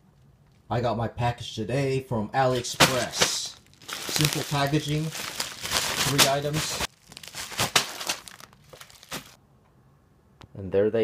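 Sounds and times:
plastic packaging crinkling: 2.5 - 9.4.

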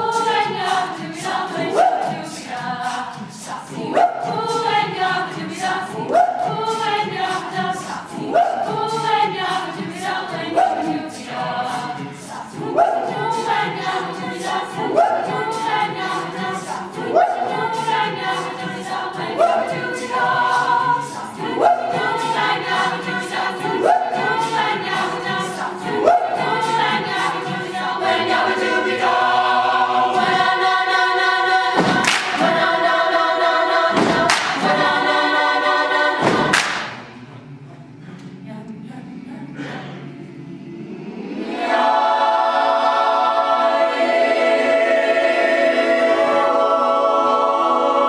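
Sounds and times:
a cappella choir singing: 0.0 - 48.0.

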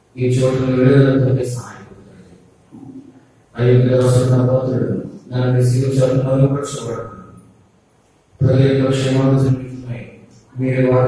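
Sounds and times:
man preaching into a microphone: 0.2 - 3.0, 3.6 - 7.4, 8.4 - 11.0.

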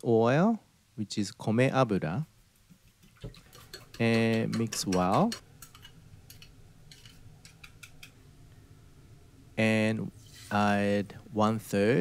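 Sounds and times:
chopsticks clicking against bowl: 3.6 - 8.2.

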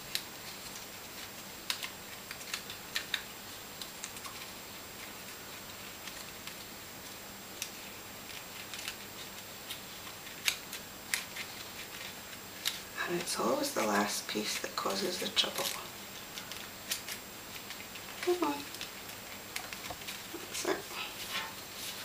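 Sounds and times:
faint steady hiss: 0.0 - 22.0
card clicking and rustling: 0.1 - 5.2.

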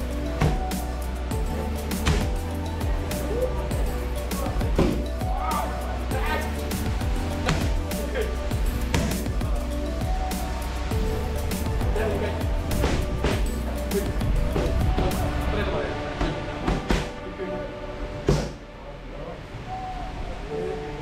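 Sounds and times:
music: 0.0 - 21.0
punches and kicks hitting pads: 0.4 - 0.6, 2.0 - 2.4.

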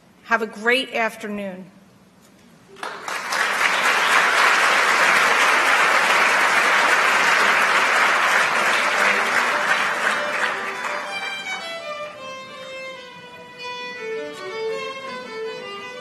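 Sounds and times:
audience applauding: 2.7 - 12.0.

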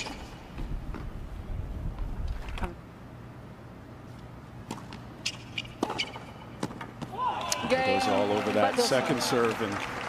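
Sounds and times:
stadium ambience hum: 0.0 - 10.0.

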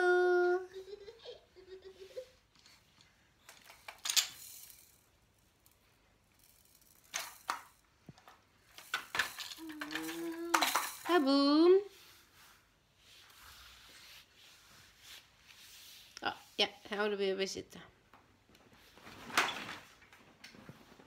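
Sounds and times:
plastic and wooden toys clattering: 2.5 - 11.4.

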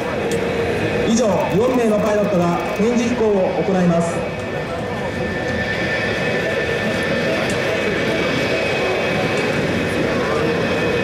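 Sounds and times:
high jet whine: 0.0 - 11.0
jet engines roaring: 0.0 - 11.0.

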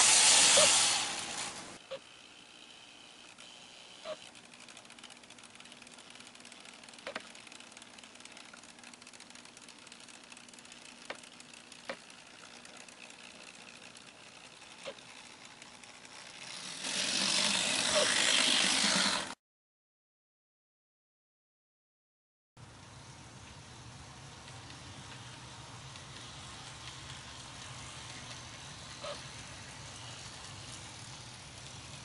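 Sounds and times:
loud hiss: 0.0 - 1.8
small locomotive motor whine: 0.0 - 19.4, 22.6 - 32.0
drive train clicks: 4.3 - 16.5, 23.4 - 32.0.

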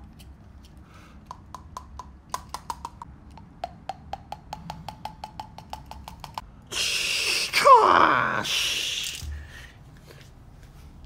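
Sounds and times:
toy figurines tapping on wooden floor: 1.3 - 6.4.

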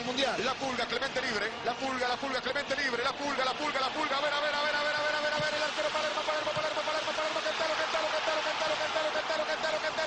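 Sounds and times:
stadium crowd roar: 0.0 - 10.0.

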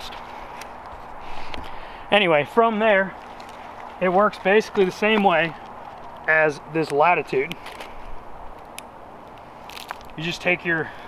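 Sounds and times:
outdoor background hiss: 0.0 - 11.0
handling noise of gear hanger: 3.2 - 10.2.

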